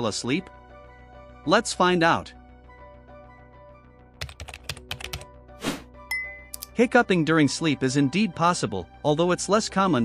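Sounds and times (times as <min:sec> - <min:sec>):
soft background music: 0:00.0 - 0:10.0
keyboard typing: 0:04.2 - 0:05.3.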